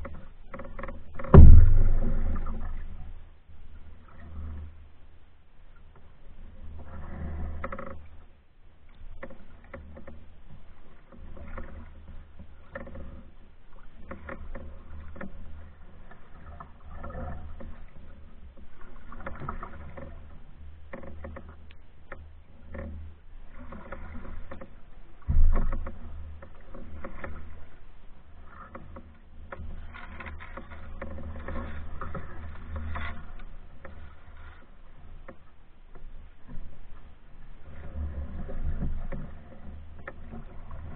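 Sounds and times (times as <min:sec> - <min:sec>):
knocks through canoe hull: 0:00.0 - 0:03.0, 0:20.9 - 0:27.8, 0:28.5 - 0:34.0
paddle swishing through water: 0:00.0 - 0:40.9
light knock on canoe: 0:01.2 - 0:02.8, 0:25.1 - 0:27.6
loud thump: 0:01.3 - 0:02.5
steady low rumble: 0:01.3 - 0:03.3.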